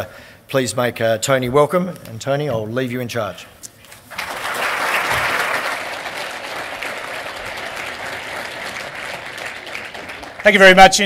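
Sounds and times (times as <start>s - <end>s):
audience applauding: 4.1s - 11.0s.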